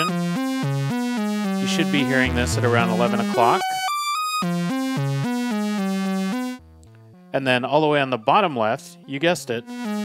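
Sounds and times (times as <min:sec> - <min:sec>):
synthesizer short bright notes: 0:01.6 - 0:03.9.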